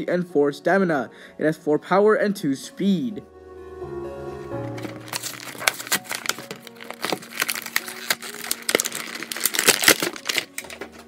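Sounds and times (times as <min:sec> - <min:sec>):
plastic packaging crinkling: 0:04.7 - 0:11.0.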